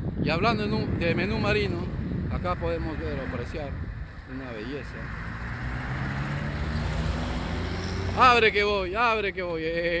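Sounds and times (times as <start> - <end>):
road noise: 0.0 - 10.0
passing car engine hum: 4.8 - 8.8.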